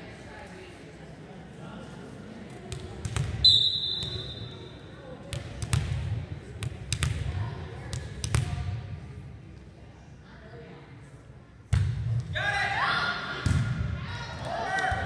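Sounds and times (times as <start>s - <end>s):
spectators chatting: 0.0s - 11.7s
volleyball bouncing on gym floor: 2.7s - 3.4s, 5.2s - 8.7s, 11.7s - 12.3s, 13.4s - 13.9s
referee whistle blast: 3.4s - 4.5s.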